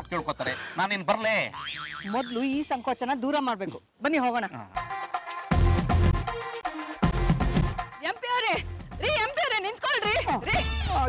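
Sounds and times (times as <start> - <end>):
woman talking: 8.0 - 10.7.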